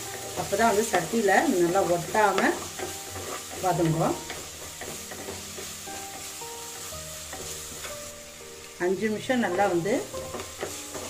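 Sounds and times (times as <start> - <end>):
wooden spatula stirring: 0.0 - 8.4, 9.3 - 11.0
onions sizzling in oil: 0.0 - 11.0
soft background melody: 0.0 - 11.0.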